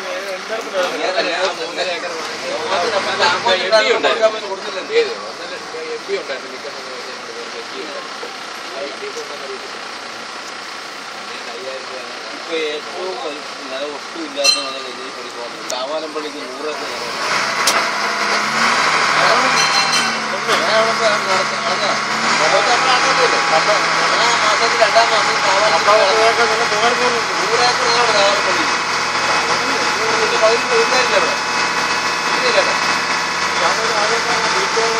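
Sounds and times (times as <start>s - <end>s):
people talking: 0.0s - 10.0s, 11.2s - 17.3s, 18.2s - 34.9s
boat engine hum: 0.0s - 34.9s.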